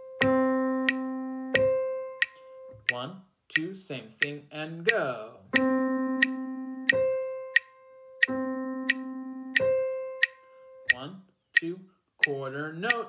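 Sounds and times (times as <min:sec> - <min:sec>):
metronome clicking: 0:00.0 - 0:13.0
man counting: 0:02.8 - 0:05.7, 0:10.9 - 0:13.0.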